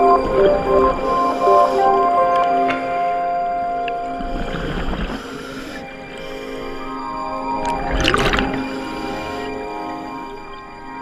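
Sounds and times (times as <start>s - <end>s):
sustained background music: 0.0s - 5.2s
scuba exhaust bubbles: 7.6s - 9.0s.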